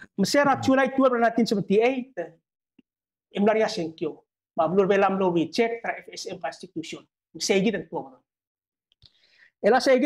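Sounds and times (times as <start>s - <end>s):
man speaking: 0.0s - 2.4s.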